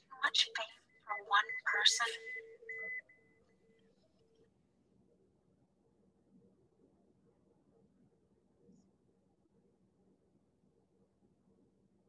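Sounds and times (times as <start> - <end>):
morse code beeps: 1.1 - 3.2.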